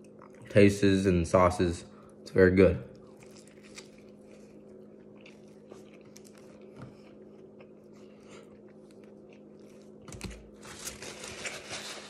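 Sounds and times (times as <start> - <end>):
paper wrapper crinkling: 10.1 - 12.0.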